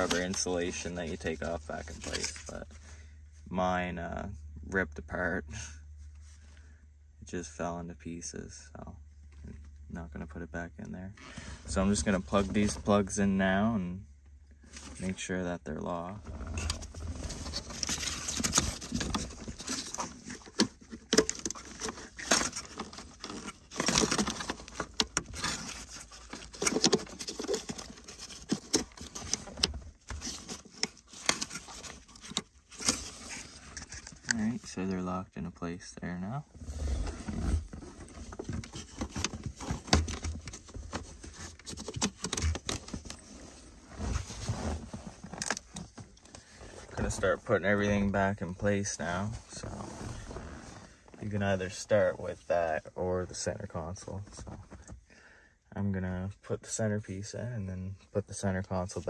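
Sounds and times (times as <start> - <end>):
wiring rustling and scraping: 0.0 - 2.8, 14.6 - 35.0, 36.5 - 55.0.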